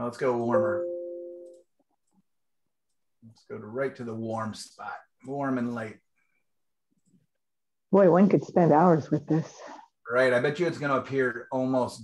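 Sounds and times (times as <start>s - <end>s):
computer warning chime: 0.2s - 1.6s.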